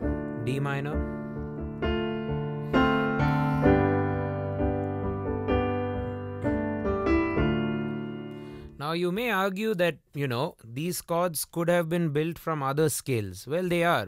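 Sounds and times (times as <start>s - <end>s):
piano chords on keyboard: 0.0s - 8.8s
man talking: 0.4s - 1.1s, 8.8s - 14.0s.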